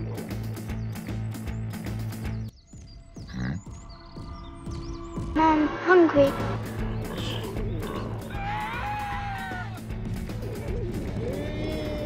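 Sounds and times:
birds chirping: 0.0s - 12.0s.

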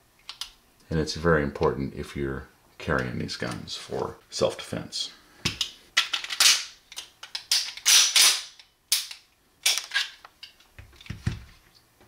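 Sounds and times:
pistol mechanism clicking: 5.6s - 10.1s.

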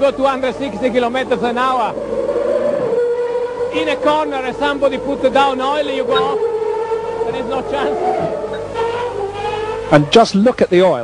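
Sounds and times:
racing car engine droning: 0.0s - 10.7s.

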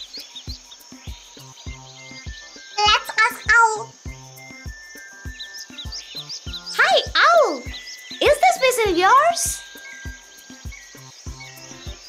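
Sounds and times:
high bird chirps: 0.0s - 12.0s
insects chirping: 0.0s - 12.0s
soft plucked background music: 0.0s - 12.0s.

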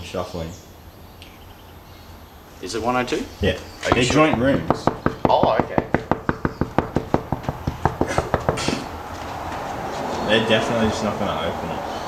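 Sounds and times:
rapid knocking on door: 3.8s - 8.9s.

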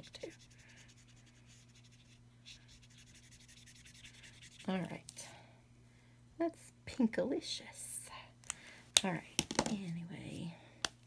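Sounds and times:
marker scratching on card: 0.0s - 4.9s
steady low hum: 0.0s - 11.0s.

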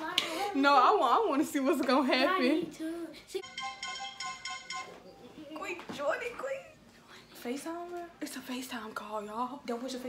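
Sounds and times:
phone ringing tone: 3.4s - 5.4s.

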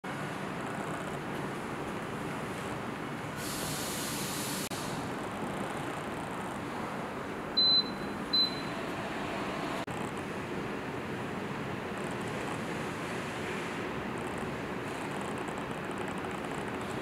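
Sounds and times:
fan airflow rushing: 0.0s - 7.6s, 8.2s - 17.0s
short high beeps: 7.6s - 8.8s.

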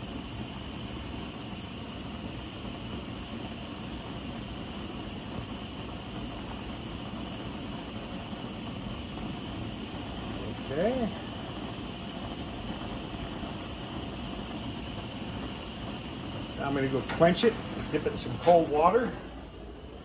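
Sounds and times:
gas torch flame hissing: 0.0s - 20.0s.

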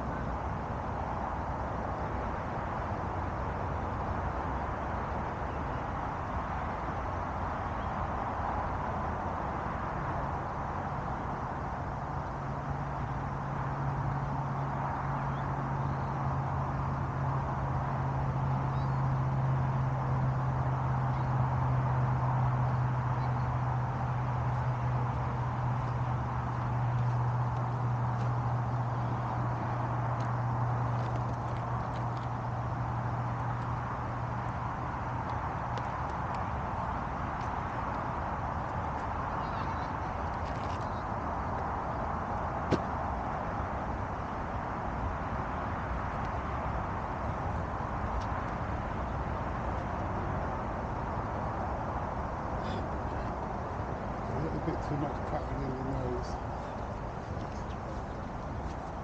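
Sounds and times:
low steady hum: 0.0s - 59.0s
outdoor background noise: 0.0s - 59.0s.

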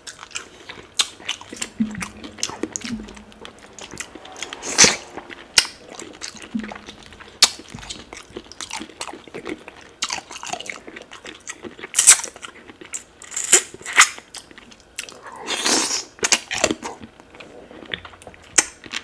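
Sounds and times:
person chewing wetly: 0.0s - 4.1s, 6.2s - 19.0s
sucking sound: 1.0s - 9.3s.

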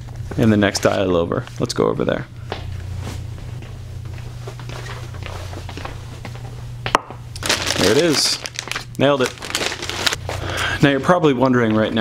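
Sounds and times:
footsteps walking in a room: 0.0s - 7.0s, 10.2s - 12.0s
steady low hum: 0.0s - 12.0s.

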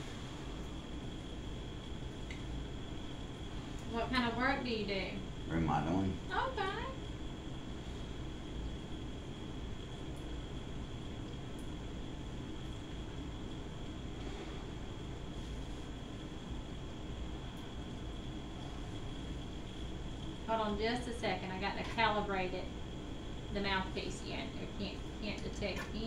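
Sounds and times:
faint high whine: 0.0s - 26.0s
hiss and hum of equipment: 0.0s - 26.0s.

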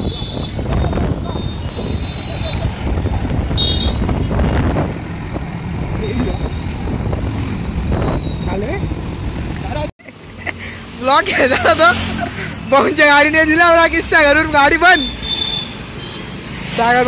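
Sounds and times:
wind on microphone: 0.0s - 9.8s
traffic noise: 0.0s - 17.0s
voices: 11.0s - 15.2s.

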